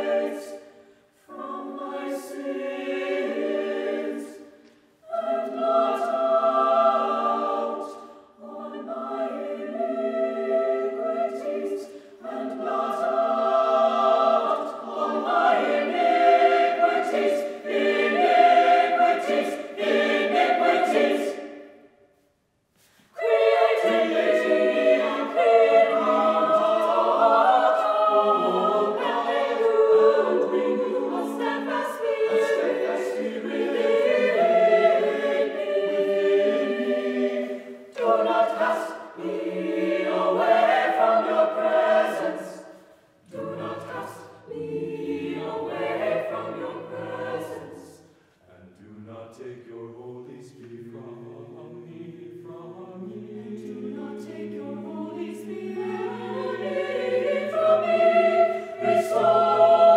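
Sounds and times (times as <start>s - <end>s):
choir singing a cappella: 0.0s - 59.9s.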